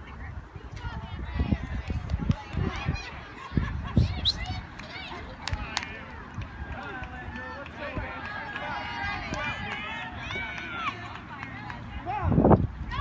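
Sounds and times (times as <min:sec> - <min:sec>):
crowd voices chattering and calling: 0:00.0 - 0:13.0.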